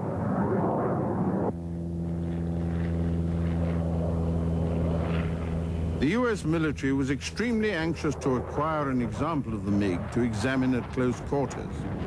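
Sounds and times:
aircraft engine drone: 0:00.0 - 0:12.0.

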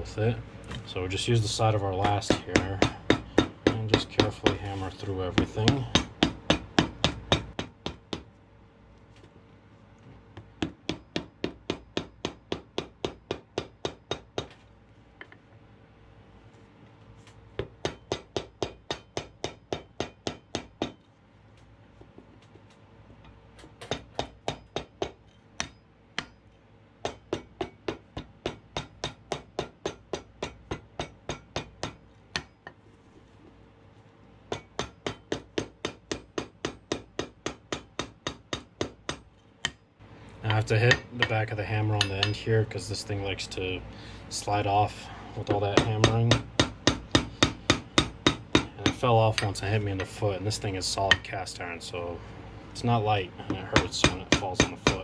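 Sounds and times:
hammer striking leather on iron: 0:02.0 - 0:04.6, 0:05.4 - 0:08.3, 0:10.4 - 0:14.6, 0:17.6 - 0:21.0, 0:23.8 - 0:32.8, 0:34.5 - 0:39.8, 0:45.5 - 0:49.5, 0:53.5 - 0:55.0.

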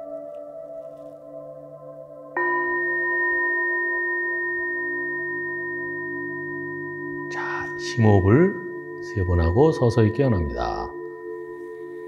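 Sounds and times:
singing bowl ringing: 0:02.4 - 0:12.0.

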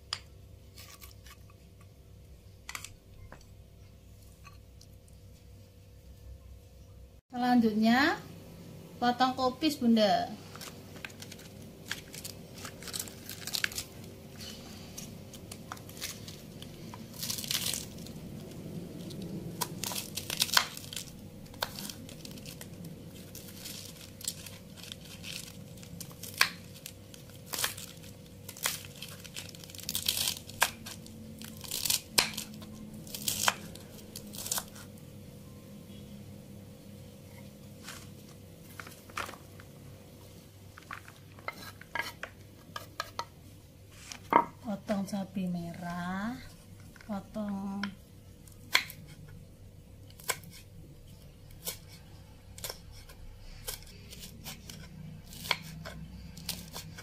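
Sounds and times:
cabbage leaves crinkling and tearing: 0:10.4 - 0:35.0, 0:52.6 - 0:57.0.

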